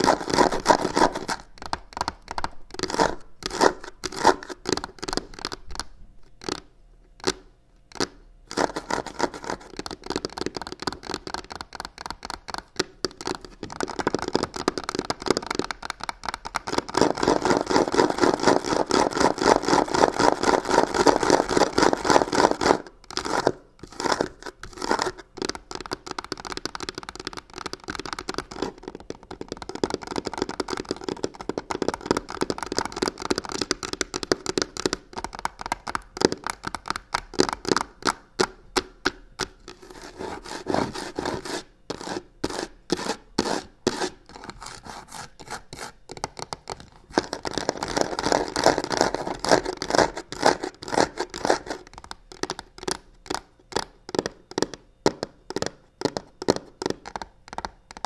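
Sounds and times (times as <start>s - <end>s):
fingernails scratching leather box: 39.7s - 51.9s.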